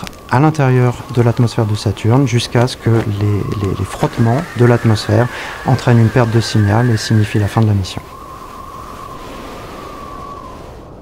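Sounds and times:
steady rushing noise: 0.0s - 11.0s
held high tone: 2.9s - 8.1s.

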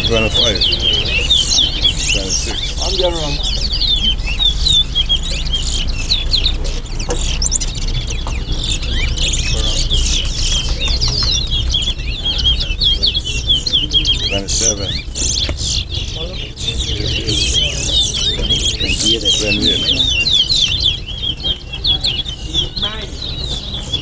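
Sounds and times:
finches singing twittering phrases: 0.0s - 24.0s.

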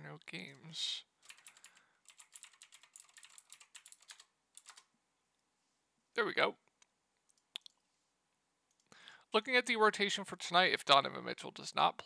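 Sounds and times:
faint keyboard typing: 0.4s - 4.9s.

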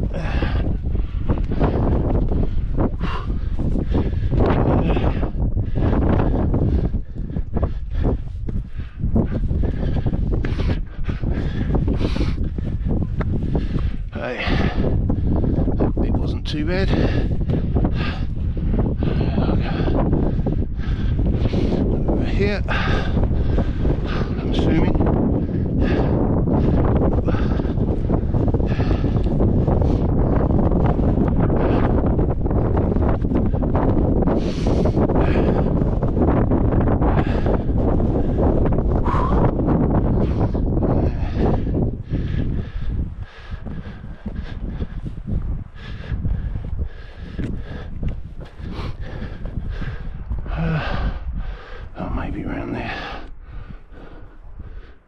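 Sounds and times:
person breathing: 0.0s - 15.7s, 39.0s - 55.0s
wind buffeting microphone: 0.0s - 55.0s.

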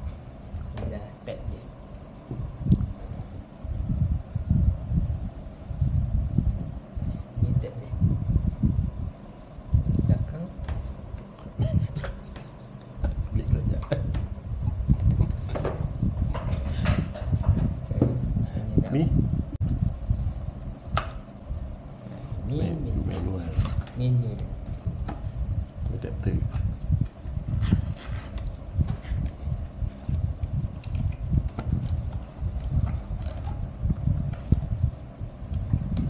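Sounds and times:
low rumbling handling noise: 0.0s - 36.0s.

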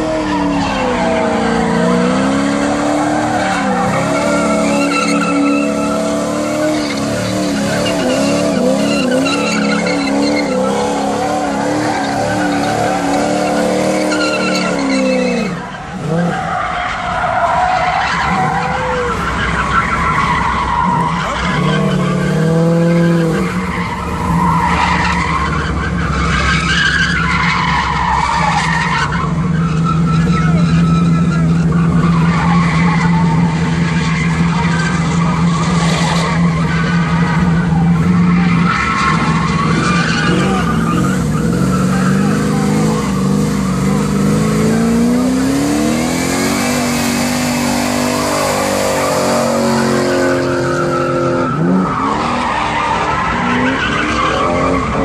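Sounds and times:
car engines revving high: 0.0s - 55.0s
tyres squealing: 0.0s - 55.0s.

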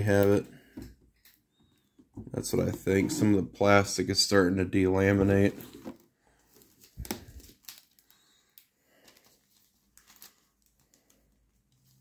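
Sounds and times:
packaging crinkling: 6.5s - 12.0s.

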